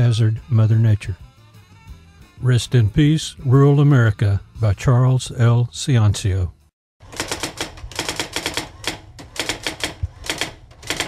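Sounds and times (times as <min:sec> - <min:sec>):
typewriter keys clacking: 0:07.1 - 0:11.0.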